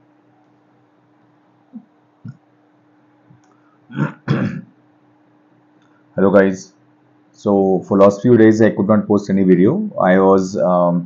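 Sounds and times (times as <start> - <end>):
faint steady hum: 0.0 - 11.0
man clearing his throat: 3.9 - 4.8.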